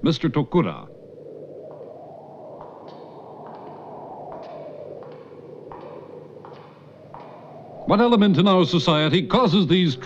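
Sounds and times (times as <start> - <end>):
background hiss: 0.0 - 10.0
footsteps echoing on stone: 2.6 - 8.6.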